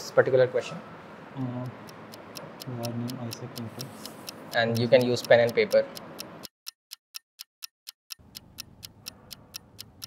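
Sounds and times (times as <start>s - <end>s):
clock ticking: 1.4s - 10.0s.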